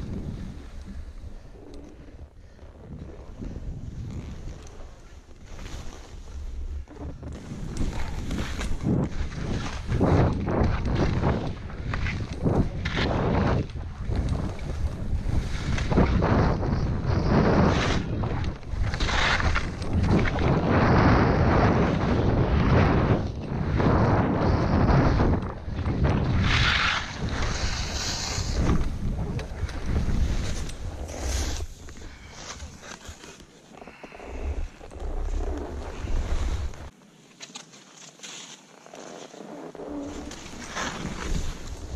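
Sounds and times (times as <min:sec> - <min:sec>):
wind buffeting microphone: 0:06.2 - 0:32.8
skis hissing through snow: 0:26.4 - 0:36.9.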